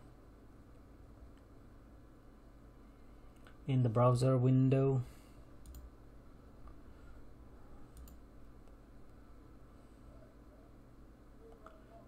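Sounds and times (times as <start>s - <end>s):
low room hum: 0.0s - 12.0s
computer mouse clicks: 5.6s - 5.9s, 7.9s - 8.8s.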